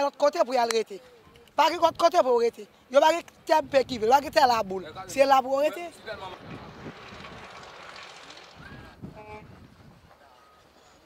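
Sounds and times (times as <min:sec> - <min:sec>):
distant engine drone: 0:05.9 - 0:09.0.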